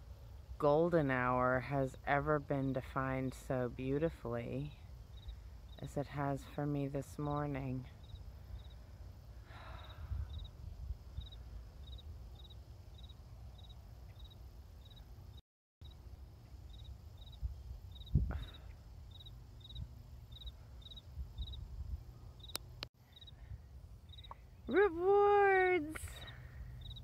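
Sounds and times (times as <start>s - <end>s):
high insect chirp: 4.4s - 25.4s, 26.2s - 27.0s
wind rumble on microphone: 9.7s - 13.7s, 17.2s - 25.2s.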